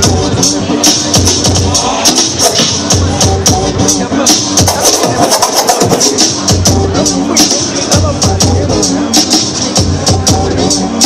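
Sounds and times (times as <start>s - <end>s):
hip-hop beat: 0.0s - 11.0s
record scratching: 4.2s - 6.5s.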